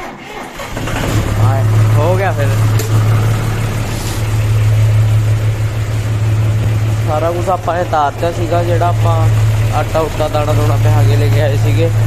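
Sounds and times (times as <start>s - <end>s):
tractor diesel engine idling: 0.3s - 12.0s.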